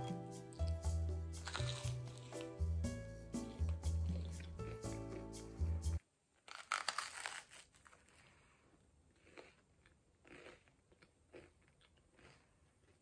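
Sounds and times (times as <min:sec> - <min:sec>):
crunchy bite into toast: 0:01.4 - 0:02.4, 0:06.5 - 0:08.3
soft chewing: 0:01.4 - 0:02.6, 0:03.4 - 0:05.3, 0:06.5 - 0:13.0.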